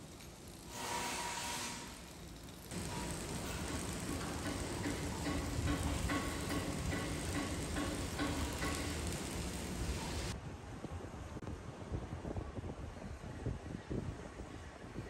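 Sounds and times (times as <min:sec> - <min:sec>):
traffic noise: 0:00.0 - 0:11.0.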